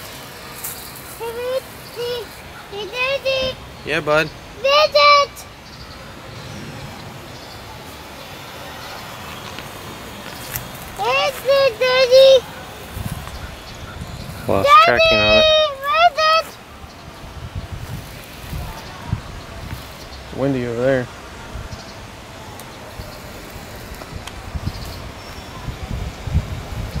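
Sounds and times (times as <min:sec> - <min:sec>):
steady outdoor hiss: 0:00.0 - 0:27.0
wind buffeting microphone: 0:01.2 - 0:27.0
wind rumble on microphone: 0:12.8 - 0:15.7, 0:16.7 - 0:20.4, 0:21.3 - 0:22.3, 0:22.9 - 0:27.0.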